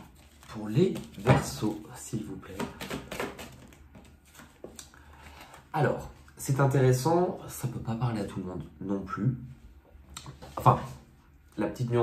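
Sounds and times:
cards clicking and rustling: 0.0 - 1.8, 2.5 - 5.6.

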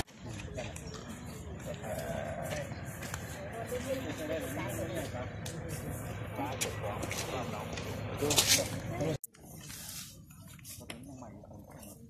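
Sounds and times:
group of people talking outdoors: 0.0 - 12.0.

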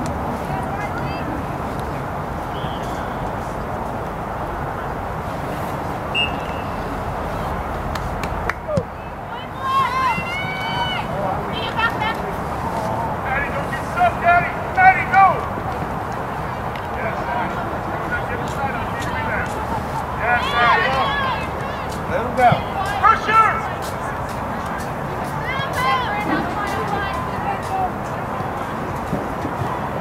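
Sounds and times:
background noise: 0.0 - 30.0
voices shouting and calling: 6.1 - 30.0.

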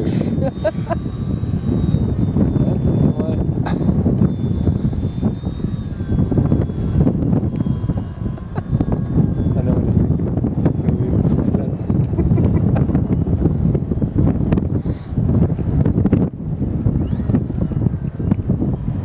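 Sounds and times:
distant model plane motor whine: 0.0 - 19.0
wind buffeting microphone: 0.0 - 19.0.

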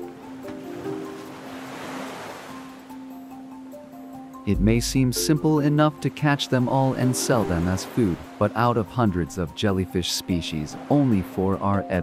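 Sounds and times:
soft sustained background music: 0.0 - 12.0.

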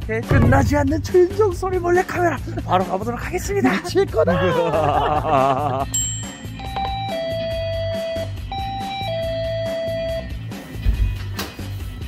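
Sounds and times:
background music with beat: 0.3 - 12.0
electronic doorbell chime: 5.9 - 10.3.

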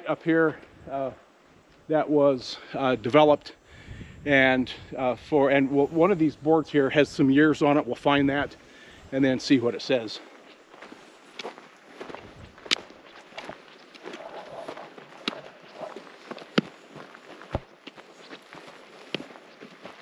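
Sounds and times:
footsteps crunching on dry dirt: 0.0 - 3.6, 4.4 - 20.0.

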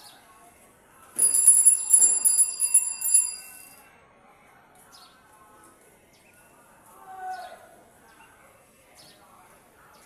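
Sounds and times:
bicycle bell rung rapidly: 1.2 - 3.9.

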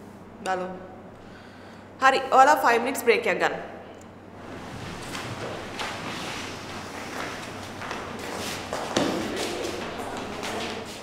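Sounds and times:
footsteps on wooden floor: 4.4 - 11.0.

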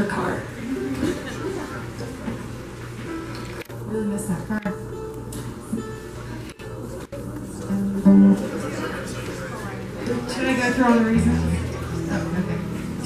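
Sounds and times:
plucked guitar notes: 4.6 - 8.9, 10.4 - 13.0.

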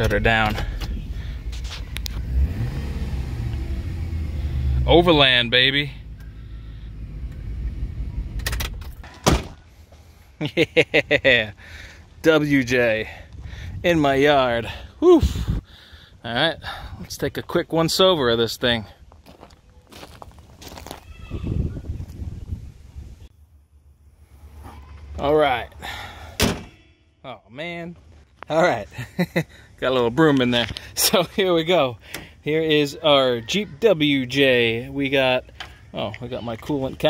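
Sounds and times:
footsteps on gravel: 18.7 - 21.4
car door thunk: 26.4 - 26.8.

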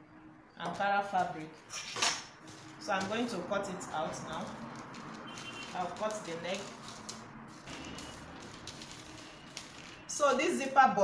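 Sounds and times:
paper rustling: 1.8 - 3.5, 4.1 - 10.8.

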